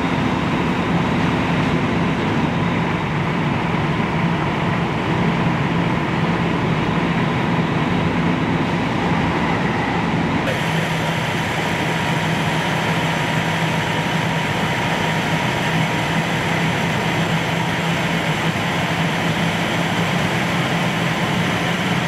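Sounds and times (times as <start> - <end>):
diesel engine and pump droning: 0.0 - 22.0.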